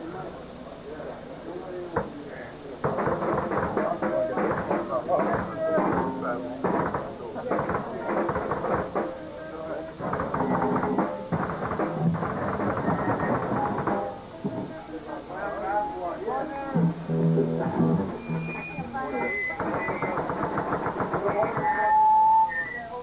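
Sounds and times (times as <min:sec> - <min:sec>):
people talking: 0:00.0 - 0:23.0
electric guitar notes: 0:15.7 - 0:20.0.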